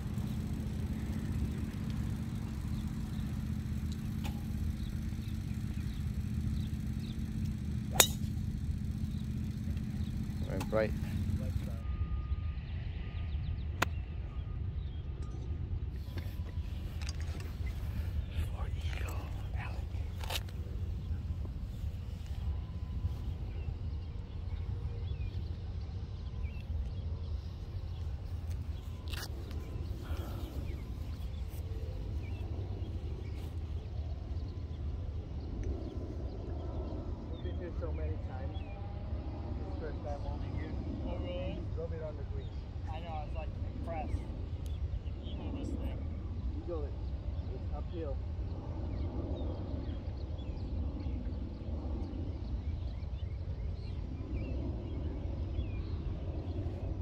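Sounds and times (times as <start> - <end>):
low outdoor rumble: 0.0 - 57.0
golf driver striking ball: 7.9 - 9.3.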